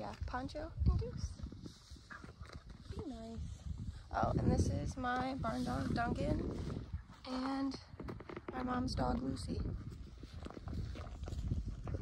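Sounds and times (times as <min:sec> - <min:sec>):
horses crunching hay: 0:09.9 - 0:12.0.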